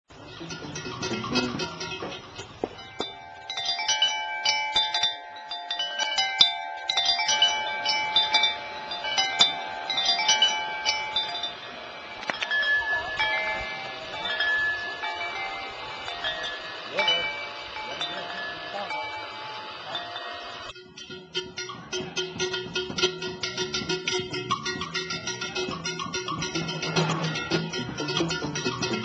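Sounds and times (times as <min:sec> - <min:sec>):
small metal chimes ringing: 0:00.1 - 0:29.0.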